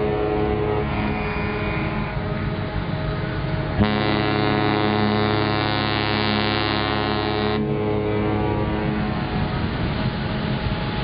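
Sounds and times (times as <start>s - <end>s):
rumbling background: 0.0s - 11.0s
ship horn deep blast: 0.0s - 11.0s.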